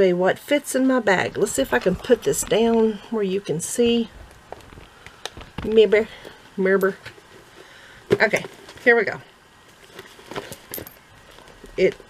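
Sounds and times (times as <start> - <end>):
handbag rustling and clicking: 1.1 - 7.5, 9.6 - 12.0.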